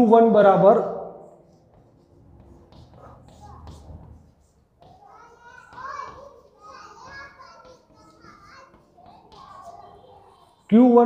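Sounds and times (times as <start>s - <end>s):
children chattering and calling: 1.3s - 11.0s.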